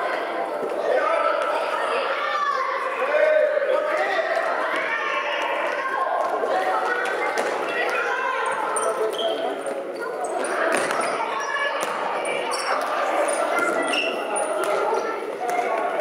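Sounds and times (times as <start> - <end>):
shoes squeaking on floor: 8.5 - 15.0.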